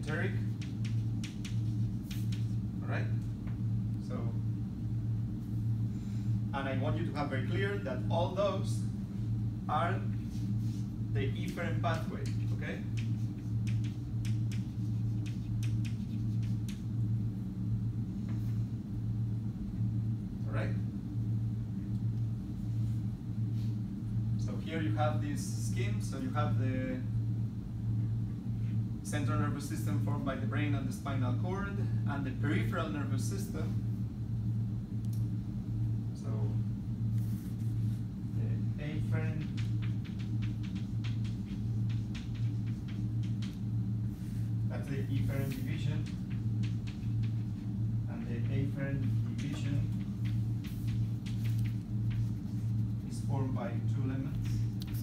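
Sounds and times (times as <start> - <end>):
low room hum: 0.0 - 55.0
chalk tapping on blackboard: 0.5 - 2.6, 12.2 - 16.8, 39.4 - 43.6, 45.1 - 47.5, 49.4 - 53.0
chalk scraping on blackboard: 12.3 - 16.8.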